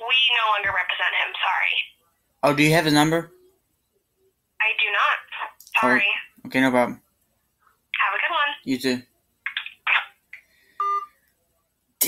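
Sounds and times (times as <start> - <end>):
smartphone beep: 10.8 - 11.2.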